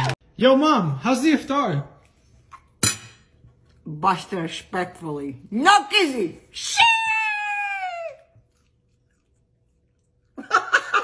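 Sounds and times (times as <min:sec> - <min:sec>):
woman squealing: 0:06.6 - 0:08.3.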